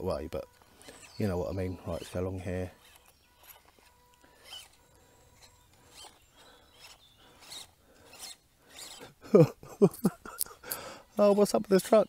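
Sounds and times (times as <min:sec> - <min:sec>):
toy car tyres scrabbling: 0:00.4 - 0:09.2
man laughing: 0:09.0 - 0:10.8.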